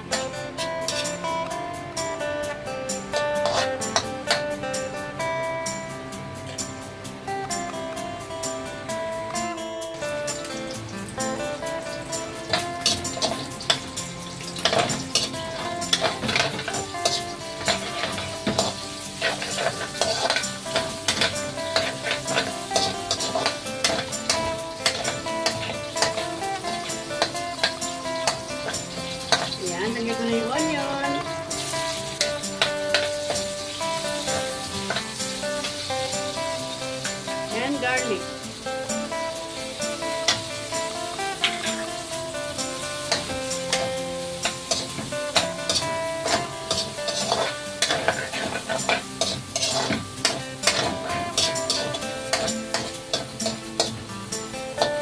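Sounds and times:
guitar music: 0.0s - 55.0s
meat sizzling in a wok: 0.0s - 55.0s
metal ladle scraping a pan: 0.6s - 1.3s, 3.1s - 4.4s, 12.4s - 30.2s, 31.2s - 37.2s, 41.2s - 54.0s.

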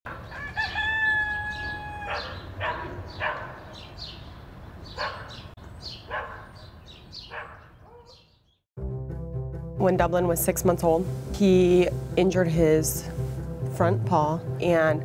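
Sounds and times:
rooster crowing: 0.1s - 2.4s.

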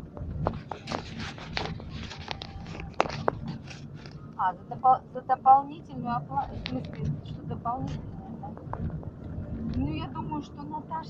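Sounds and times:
car interior hum: 0.0s - 11.0s.

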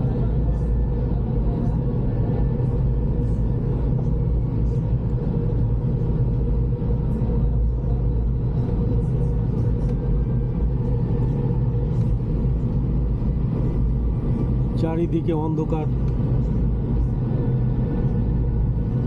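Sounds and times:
ferry engines droning: 0.0s - 19.0s.

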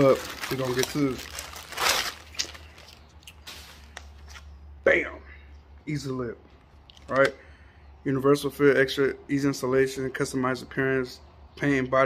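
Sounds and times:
packaging rustling: 0.0s - 4.5s.

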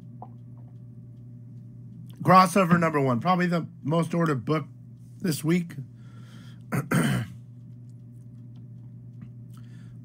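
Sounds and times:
man clearing his throat: 6.7s - 7.4s.

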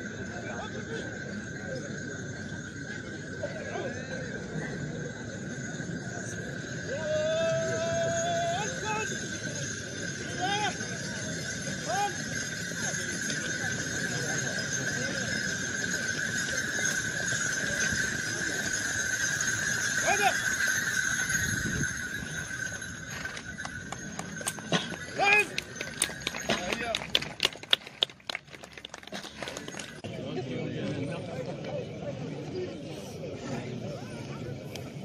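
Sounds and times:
crowd voices: 0.0s - 35.0s
hooves shuffling: 8.7s - 30.0s
horse harness clicking: 23.0s - 30.0s.

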